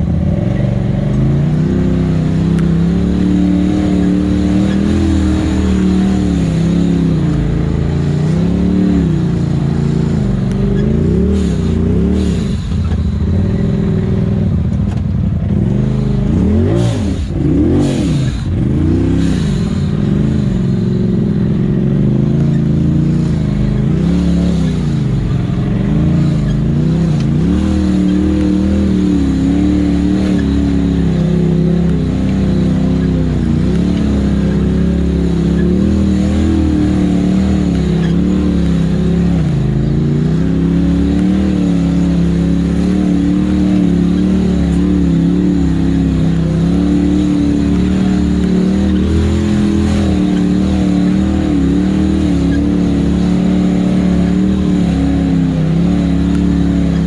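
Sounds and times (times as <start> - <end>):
engine revving: 0.0 - 57.0.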